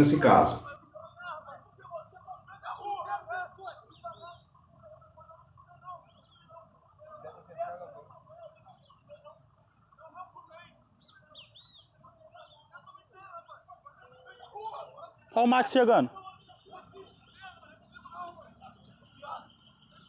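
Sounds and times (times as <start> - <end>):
birds chirping: 0.0 - 20.0
distant voices: 0.0 - 20.0.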